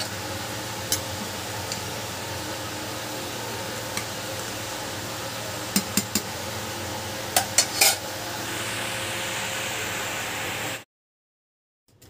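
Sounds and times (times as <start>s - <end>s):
water boiling in a pot: 0.0s - 10.8s.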